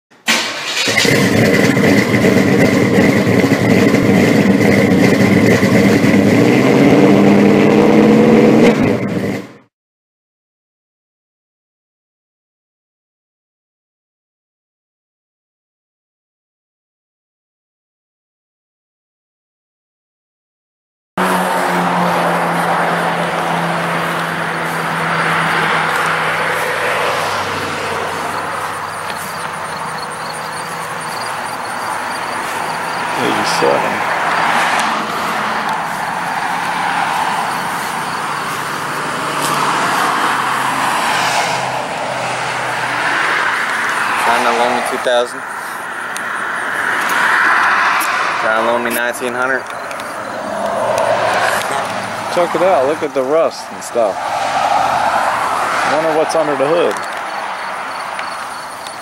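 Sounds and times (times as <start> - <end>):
car engine revving: 0.3 - 9.6, 21.2 - 59.0
fast high ticking: 28.1 - 34.0.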